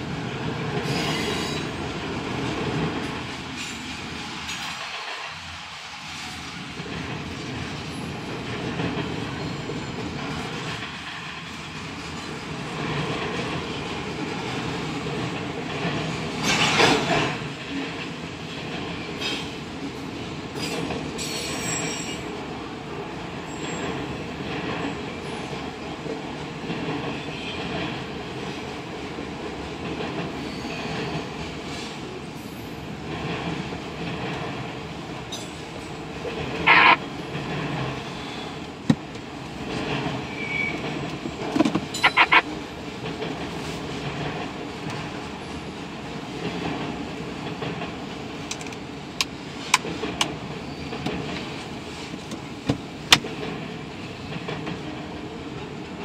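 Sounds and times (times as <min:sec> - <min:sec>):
train cars rolling on rails: 0:00.0 - 0:56.0
wheel screeching on rail: 0:00.7 - 0:02.0, 0:20.6 - 0:22.3, 0:35.3 - 0:38.8, 0:39.5 - 0:44.4, 0:50.4 - 0:52.3.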